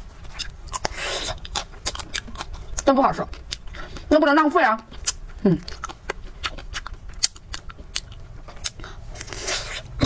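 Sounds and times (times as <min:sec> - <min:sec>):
chewing ice cream bar: 0:00.2 - 0:04.1, 0:04.9 - 0:10.0.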